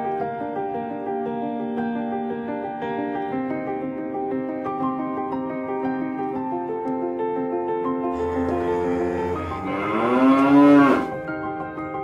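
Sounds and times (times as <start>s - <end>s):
long low animal call: 8.2s - 11.2s.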